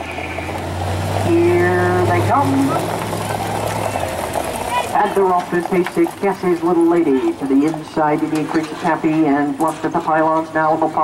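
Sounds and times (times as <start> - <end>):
outdoor rush of noise: 0.0 - 11.0
vehicle engine humming: 0.0 - 11.0.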